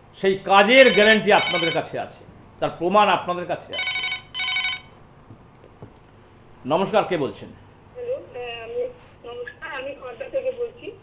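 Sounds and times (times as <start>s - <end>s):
desk telephone ringing: 0.8s - 1.9s, 3.8s - 5.0s.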